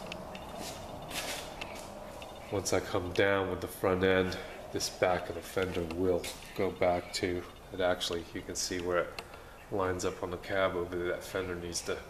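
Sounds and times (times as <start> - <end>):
handling noise: 0.0 - 3.2
shuffling footsteps: 0.0 - 7.5
low background hiss: 0.0 - 12.0.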